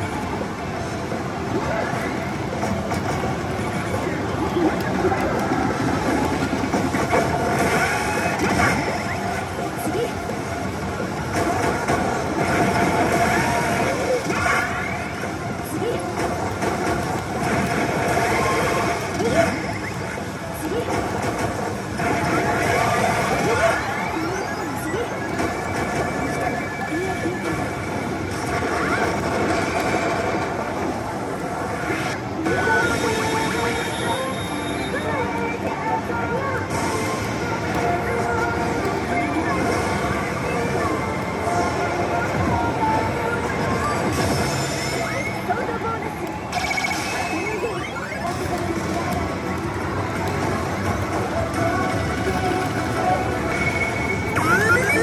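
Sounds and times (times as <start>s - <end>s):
din of gaming hall: 0.0s - 55.0s
slot machine music: 46.4s - 55.0s.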